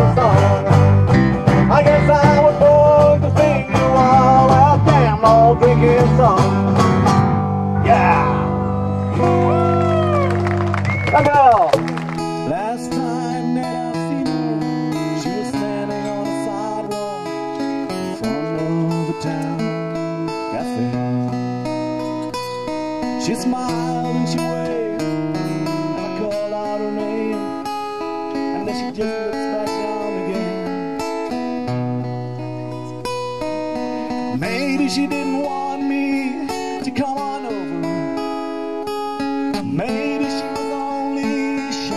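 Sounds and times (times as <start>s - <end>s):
acoustic guitar chord with bending notes: 0.0s - 41.9s
fingerpicked acoustic guitar: 0.0s - 41.9s.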